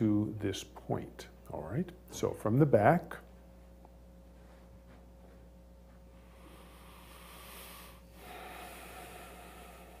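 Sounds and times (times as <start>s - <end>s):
person breathing close to microphone: 6.1s - 10.0s.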